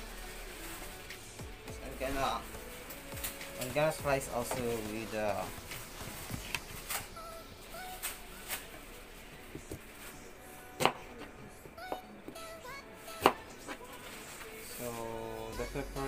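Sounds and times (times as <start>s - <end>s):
faint background music: 0.0s - 16.0s.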